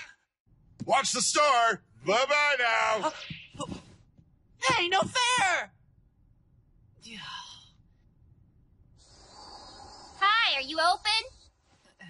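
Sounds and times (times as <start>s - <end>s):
high chirring of insects: 9.0s - 11.5s.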